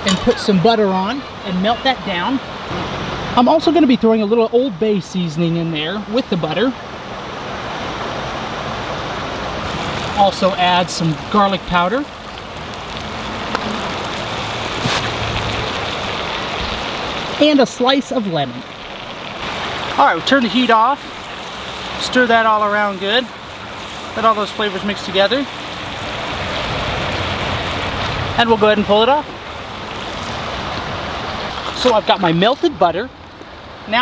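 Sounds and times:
butter sizzling in skillet: 18.0 - 27.3.

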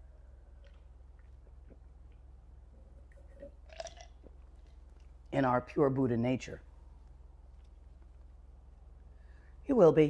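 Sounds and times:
low steady hum: 0.0 - 10.0
sipping and swallowing: 3.0 - 5.2.

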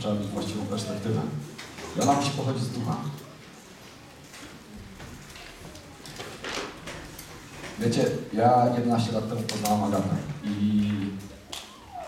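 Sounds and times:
man speaking: 0.0 - 3.3, 7.8 - 11.4.

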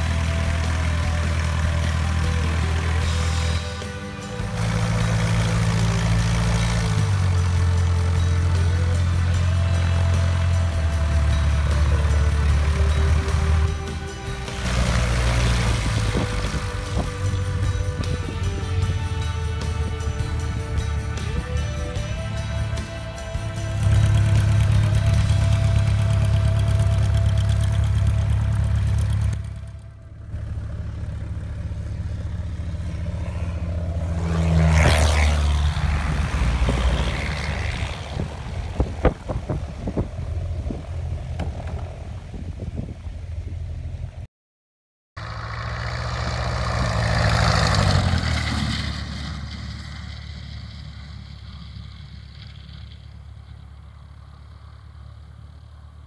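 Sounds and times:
planes passing close by: 0.0 - 44.2, 45.2 - 56.0
light aircraft propeller engine: 0.0 - 44.3, 45.2 - 56.0.

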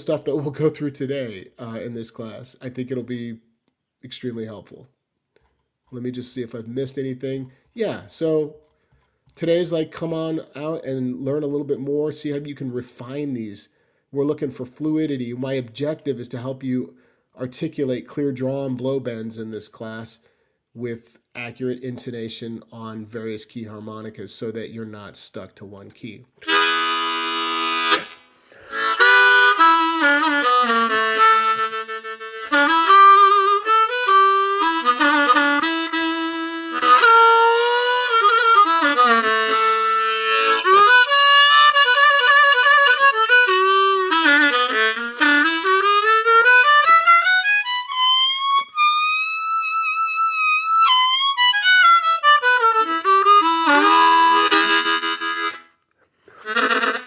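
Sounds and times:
harmonica playing bent notes: 26.4 - 57.0.

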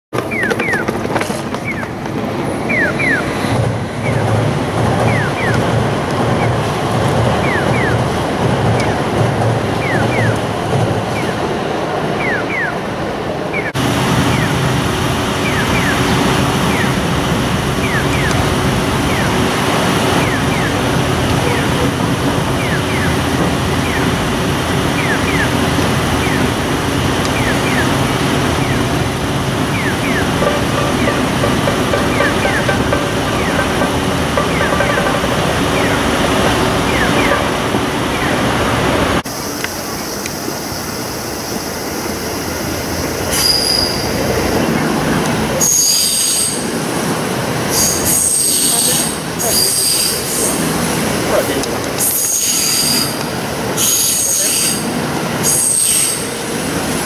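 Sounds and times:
street traffic: 0.0 - 57.0.

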